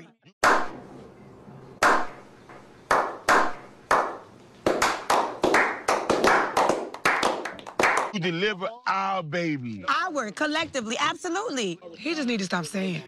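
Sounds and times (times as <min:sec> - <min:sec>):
men clapping slowly: 0:02.9 - 0:08.2.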